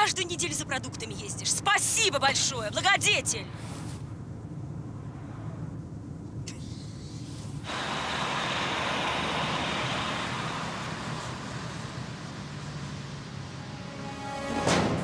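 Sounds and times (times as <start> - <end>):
car engine from inside cabin: 3.6 - 13.9.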